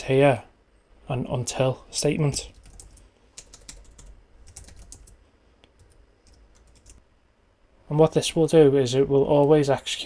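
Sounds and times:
faint keyboard typing: 2.3s - 7.0s.

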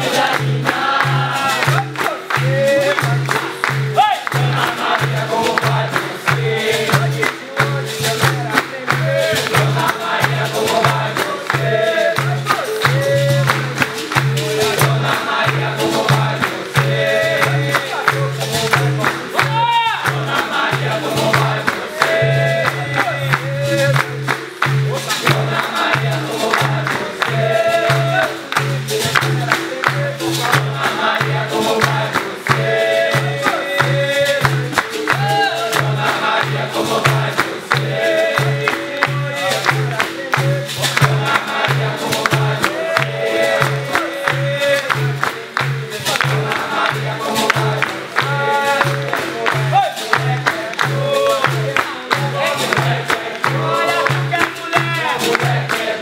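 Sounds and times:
group singing: 0.0s - 56.0s
hand clapping: 0.0s - 56.0s
hand drum beat: 0.0s - 56.0s.

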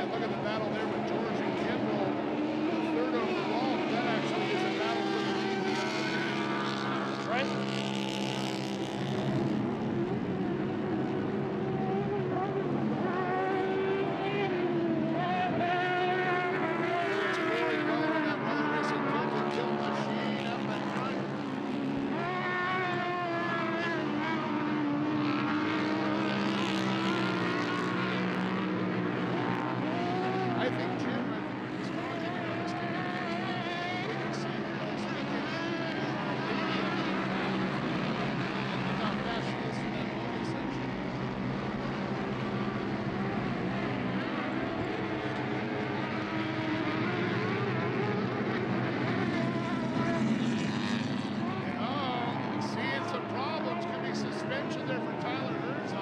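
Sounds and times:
engines revving: 0.0s - 56.0s.

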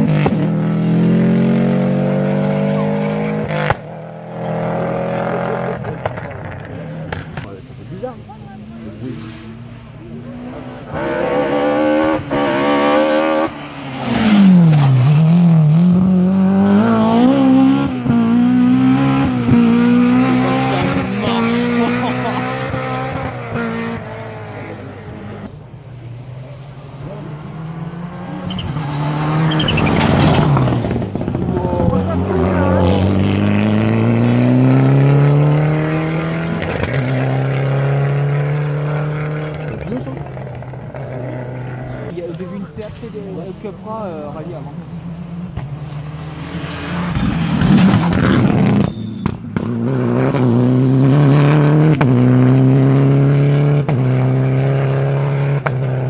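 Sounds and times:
rally cars racing past: 0.0s - 56.0s.

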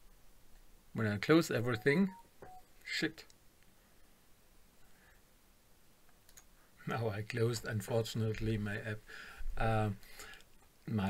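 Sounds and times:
man's voice: 1.0s - 2.2s
faint clicks: 6.0s - 6.6s, 10.2s - 10.8s.

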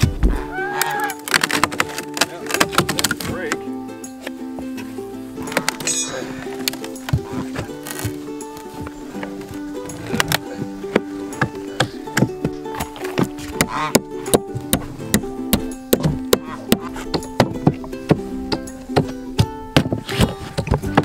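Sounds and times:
background music with held tones: 0.0s - 21.0s
pry bar and hammer knocking wood: 1.1s - 3.3s, 10.1s - 21.0s.

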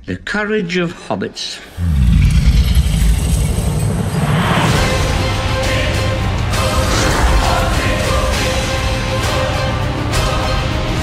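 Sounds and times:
deep rumble: 1.8s - 8.3s.

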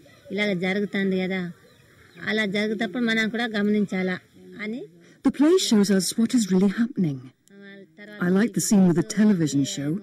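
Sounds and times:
person speaking: 2.3s - 10.0s.

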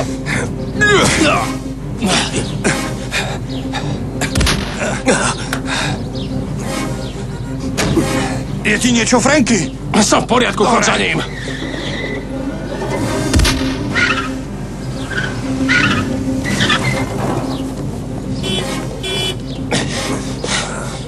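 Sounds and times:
film music: 0.0s - 21.0s
tyres squealing: 0.0s - 21.0s
heavy thump: 4.4s - 4.8s, 13.3s - 14.0s
car driving hard: 11.1s - 21.0s.

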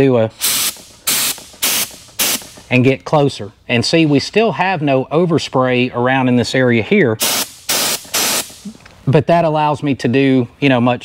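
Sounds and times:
spray gun hissing: 0.4s - 2.6s, 7.2s - 8.7s.

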